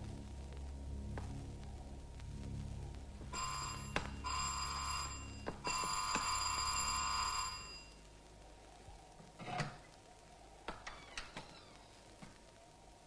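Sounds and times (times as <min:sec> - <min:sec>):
electric bell ringing: 0:03.3 - 0:08.0.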